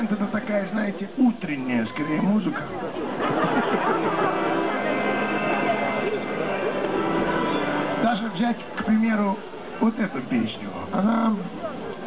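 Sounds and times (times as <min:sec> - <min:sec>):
indistinct voices talking: 0:01.7 - 0:12.0
held instrument tone: 0:03.8 - 0:08.3.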